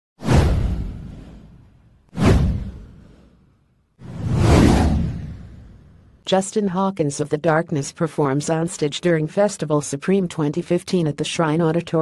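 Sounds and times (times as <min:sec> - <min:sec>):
whoosh sound effects: 0:02.2 - 0:03.4, 0:04.0 - 0:06.1.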